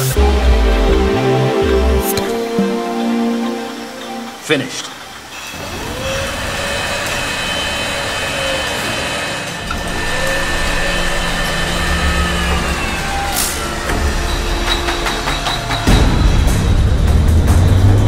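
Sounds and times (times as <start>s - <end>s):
bottling machinery whine: 0.0s - 16.4s
low machinery rumble: 5.0s - 18.0s.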